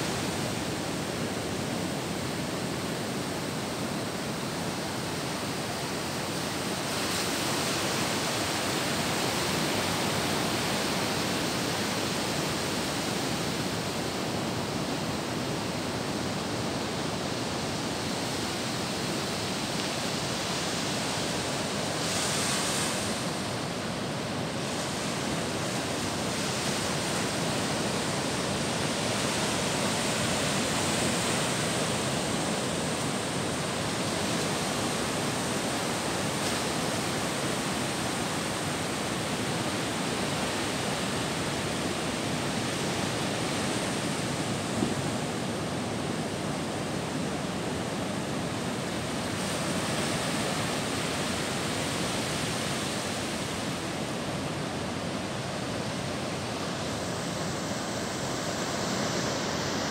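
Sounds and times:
ocean surf breaking on beach: 0.0s - 59.9s.

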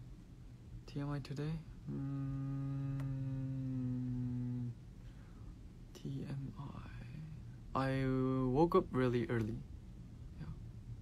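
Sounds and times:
man humming: 1.8s - 4.8s.

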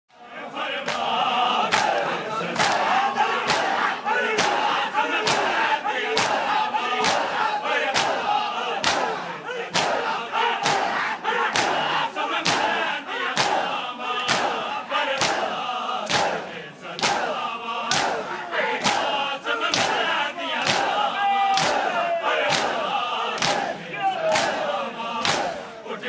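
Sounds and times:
men chanting: 0.2s - 26.0s
hands slapping chests in unison: 0.8s - 25.8s.

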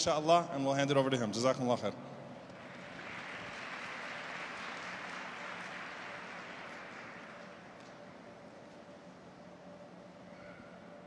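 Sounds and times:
audience applauding: 2.6s - 8.0s.

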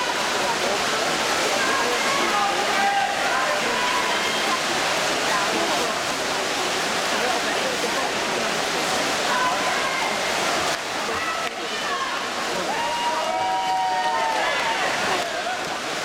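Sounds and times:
swimmers splashing: 0.0s - 16.0s.

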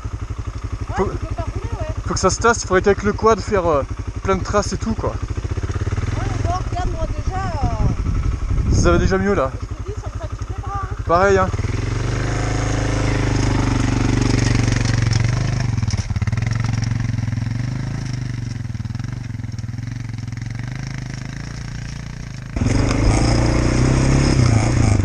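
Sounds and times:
dirt bike engine idling: 0.0s - 25.0s
quad engine: 0.0s - 25.0s
louder engine running: 0.8s - 25.0s.

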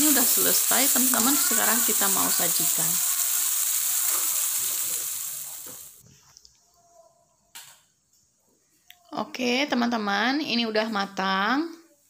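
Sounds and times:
vegetables sizzling in a wok: 0.0s - 6.0s.

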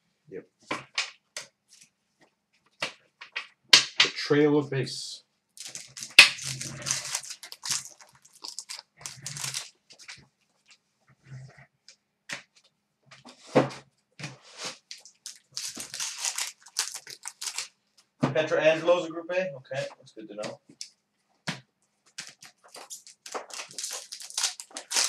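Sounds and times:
card packs being torn open: 5.6s - 9.7s, 14.9s - 17.7s, 22.2s - 25.0s
cards rustling and clicking: 5.6s - 10.3s, 14.2s - 17.7s, 21.5s - 25.0s.

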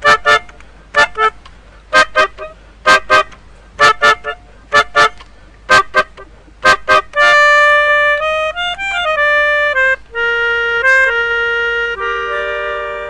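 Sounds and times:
melodica staccato chords: 0.0s - 13.0s.

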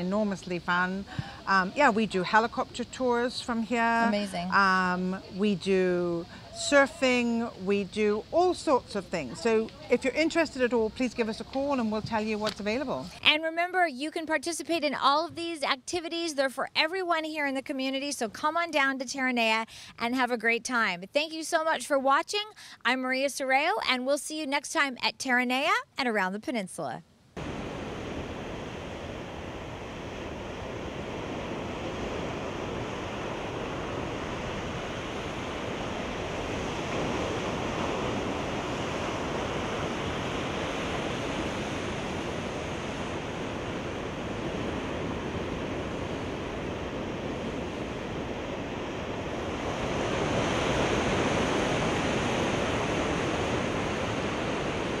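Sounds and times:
surf breaking on rocky shore: 27.4s - 55.0s.

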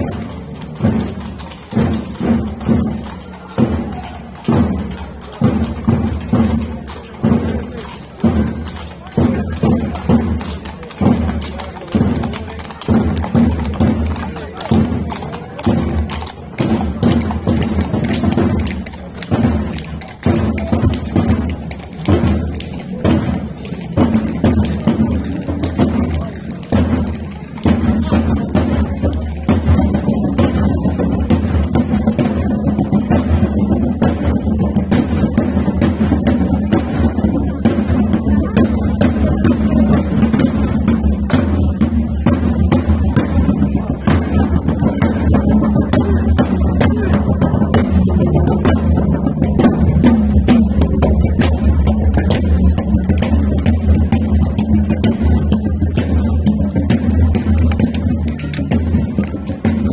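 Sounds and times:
marching drums beating: 0.0s - 59.9s.

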